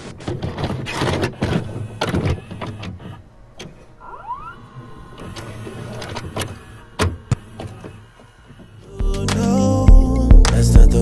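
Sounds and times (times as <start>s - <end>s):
motor whirr: 1.1s - 8.9s.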